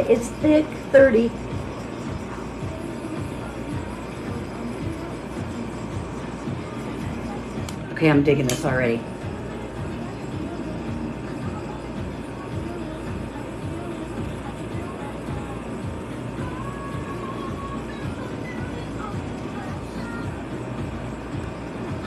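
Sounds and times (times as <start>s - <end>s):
faint music: 0.0s - 22.0s
handheld air blower running: 0.0s - 22.0s.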